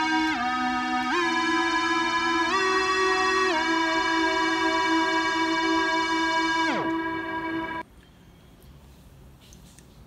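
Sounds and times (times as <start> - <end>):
sustained synth string note: 0.0 - 7.8
tape slowing pitch slide: 0.0 - 7.8.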